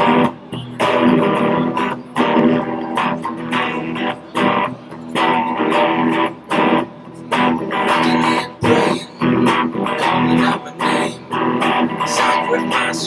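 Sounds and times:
electric guitar strumming chords: 0:00.0 - 0:13.0.

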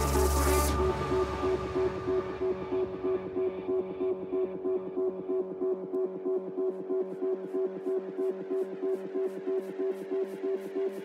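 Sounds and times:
electronic dance music: 0:00.0 - 0:03.9
pulsing synth riff: 0:00.0 - 0:11.0.

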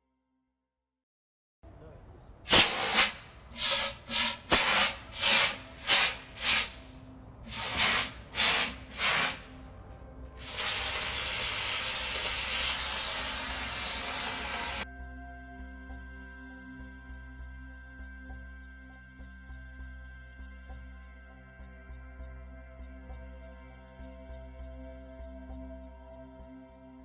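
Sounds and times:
fire extinguisher spraying: 0:02.5 - 0:06.8, 0:07.5 - 0:09.5, 0:10.4 - 0:14.8.

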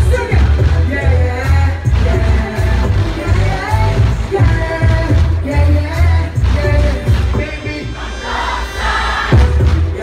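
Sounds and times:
live music over pa: 0:00.0 - 0:10.0
crowd singing along: 0:01.7 - 0:10.0.

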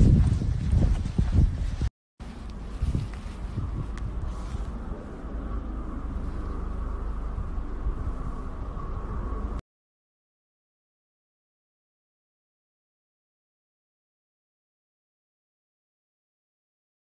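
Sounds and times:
low wind rumble on microphone: 0:00.0 - 0:09.6.

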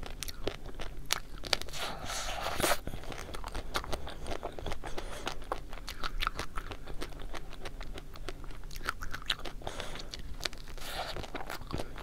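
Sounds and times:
chocolate shell crunching: 0:00.0 - 0:12.0.

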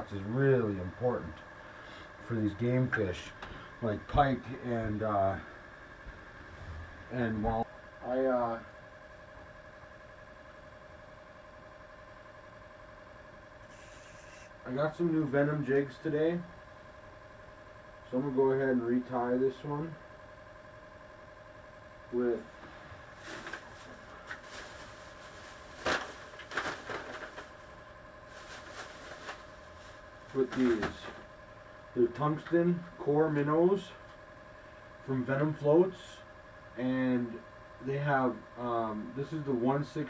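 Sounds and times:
faint steady tonal hum: 0:00.0 - 0:40.0
plastic bag crinkling: 0:23.1 - 0:30.8.

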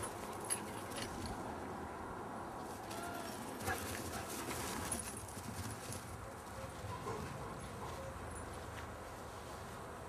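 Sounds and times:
dog paws galloping on grass: 0:02.6 - 0:09.9.

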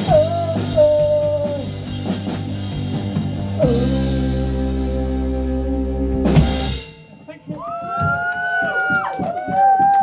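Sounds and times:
punk band playing: 0:00.0 - 0:10.0
drum crash: 0:06.3 - 0:09.5
whoops and shouts: 0:07.5 - 0:10.0.

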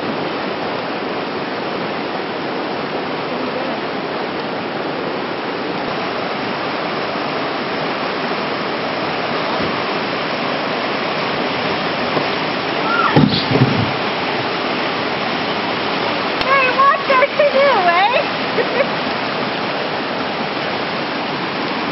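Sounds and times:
river rapids rushing: 0:00.0 - 0:21.9.

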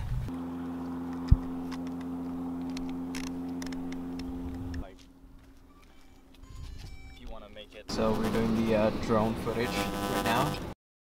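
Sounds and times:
motor hum: 0:00.0 - 0:10.7.

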